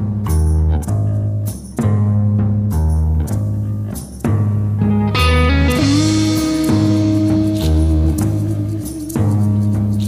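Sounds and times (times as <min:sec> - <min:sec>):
bass guitar: 0:00.0 - 0:10.0
drum kit: 0:00.0 - 0:10.0
electric guitar: 0:03.1 - 0:10.0.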